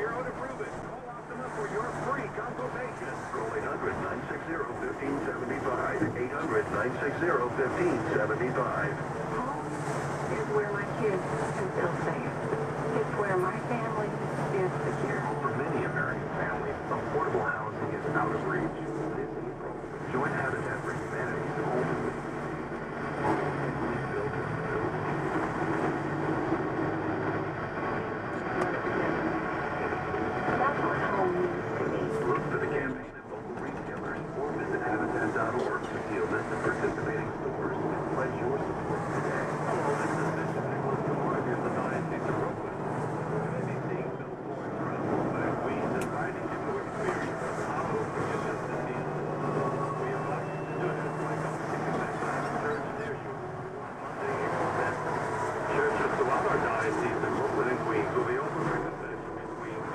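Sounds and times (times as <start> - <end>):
indistinct radio talk: 0.0 - 26.5, 27.2 - 59.9
truck engine: 0.0 - 59.9
tyres on wet road: 0.0 - 59.9.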